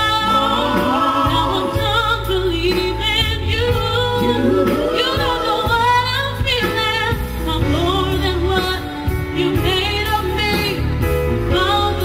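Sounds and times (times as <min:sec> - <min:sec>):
backing music with bass line: 0:00.0 - 0:12.0
woman singing pop song: 0:00.0 - 0:12.0.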